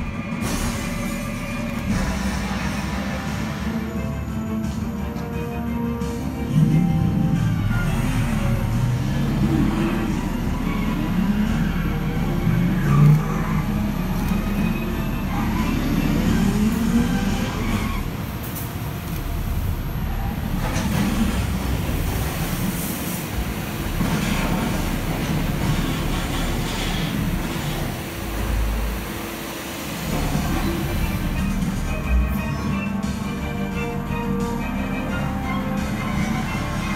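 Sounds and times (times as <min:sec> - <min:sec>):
film soundtrack deep rumble: 0:00.0 - 0:36.9.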